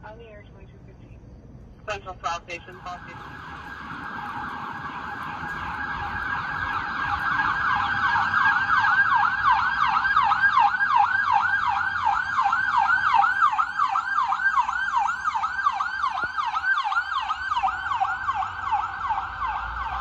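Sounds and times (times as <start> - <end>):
ambulance siren yelping: 2.6 - 20.0.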